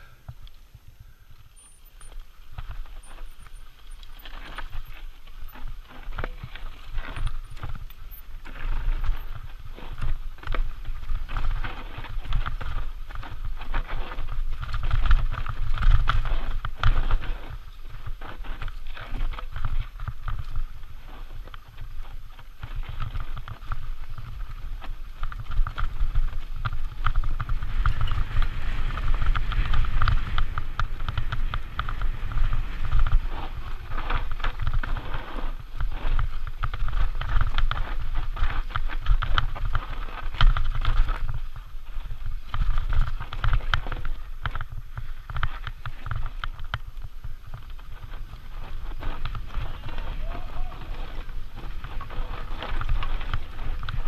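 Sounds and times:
wind rumble on microphone: 0:00.0 - 0:54.0
bike clattering and rattling: 0:01.4 - 0:54.0
tyres crunching over dirt and stones: 0:02.1 - 0:54.0.

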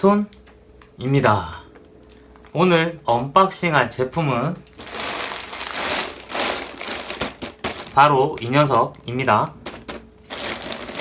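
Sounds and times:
plastic mailer bag crinkling: 0:04.6 - 0:08.6, 0:09.6 - 0:11.0.

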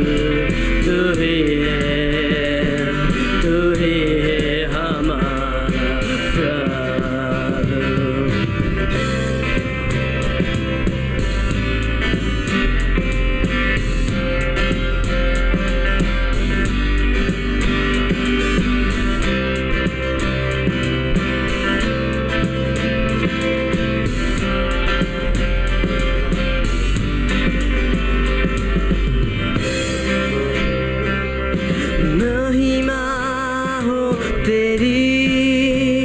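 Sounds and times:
person singing: 0:00.0 - 0:09.6, 0:29.6 - 0:36.0
acoustic guitar: 0:00.0 - 0:36.0
electric bass: 0:00.0 - 0:36.0
electric guitar: 0:00.0 - 0:36.0.

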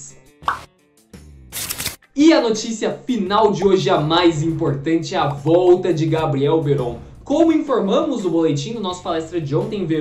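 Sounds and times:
pop sound effect: 0:00.4 - 0:00.7.

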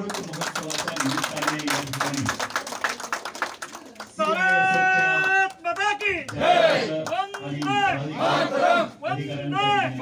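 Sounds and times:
people clapping: 0:00.0 - 0:08.5.

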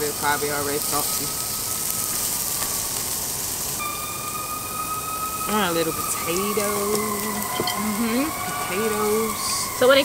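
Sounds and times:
meat sizzling on a grill: 0:00.0 - 0:10.0
steady high-pitched tone: 0:00.0 - 0:10.0.

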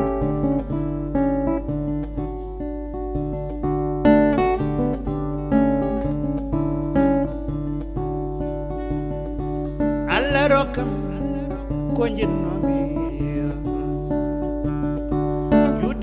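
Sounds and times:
acoustic guitar plucked notes: 0:00.0 - 0:16.0.

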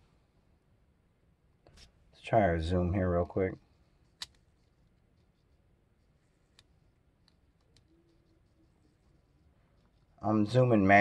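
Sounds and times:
small clicks: 0:04.1 - 0:05.0.

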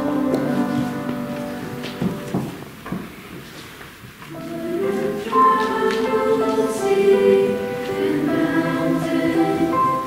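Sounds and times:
mixed choir singing: 0:00.0 - 0:02.3, 0:04.3 - 0:10.0.

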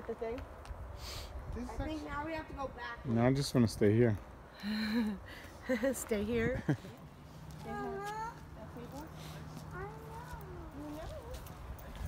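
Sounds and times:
faint high-pitched voices talking: 0:09.6 - 0:11.5.

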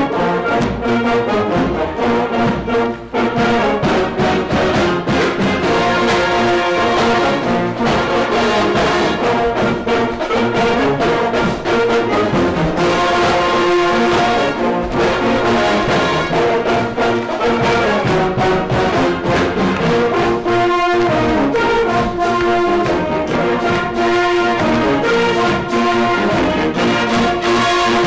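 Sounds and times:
marching band playing: 0:00.0 - 0:28.0.

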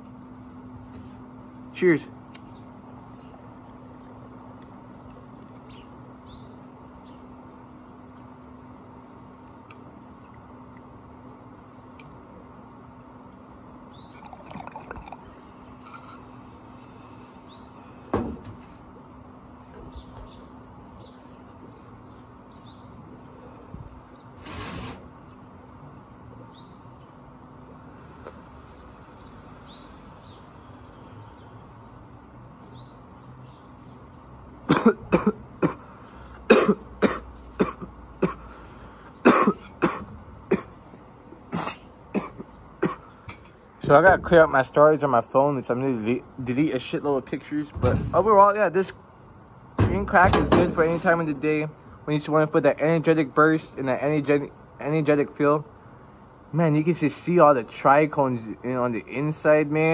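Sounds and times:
bong water bubbling: 0:14.1 - 0:15.3
man coughing: 0:34.6 - 0:38.6, 0:39.2 - 0:40.8, 0:41.5 - 0:43.2.

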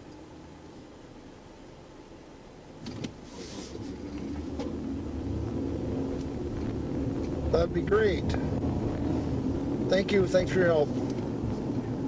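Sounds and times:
car engine accelerating: 0:02.8 - 0:12.0.

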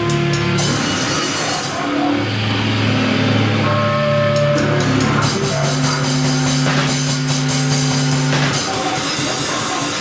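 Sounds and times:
amplifier noise: 0:00.0 - 0:10.0
electric guitar and bass notes: 0:00.0 - 0:10.0
drum hits: 0:04.4 - 0:10.0.

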